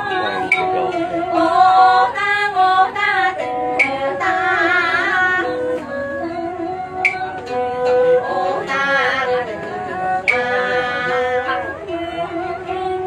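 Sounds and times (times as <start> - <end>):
held instrumental notes: 0.0 - 13.0.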